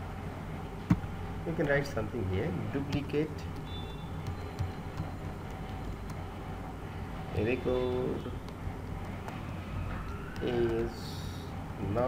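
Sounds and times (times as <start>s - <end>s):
low background hum: 0.0s - 12.0s
keyboard clicks: 2.8s - 6.3s, 8.4s - 11.0s.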